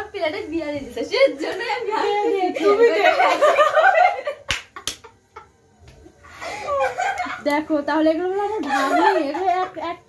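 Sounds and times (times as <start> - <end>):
laughter: 2.6 - 5.6, 6.5 - 7.4, 8.6 - 10.0.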